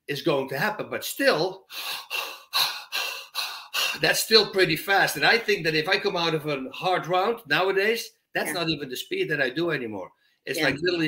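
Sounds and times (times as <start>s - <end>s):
man breathing fast and hard: 1.6s - 4.0s.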